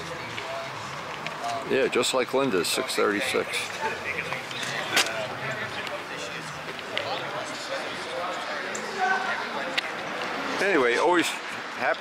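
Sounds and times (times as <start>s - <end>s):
distant people talking: 0.0s - 12.0s.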